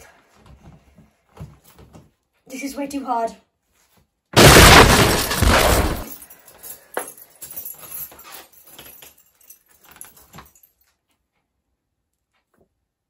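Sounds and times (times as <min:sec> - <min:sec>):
door handle and keys rattling: 0:06.8 - 0:10.8.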